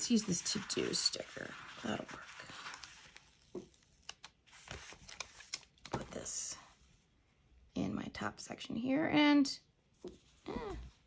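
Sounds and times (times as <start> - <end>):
paper rustling: 0.0 - 6.4.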